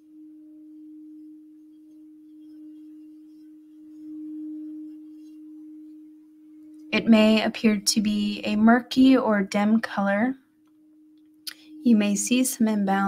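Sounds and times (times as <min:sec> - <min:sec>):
singing bowl sustained tone: 0:00.0 - 0:13.0.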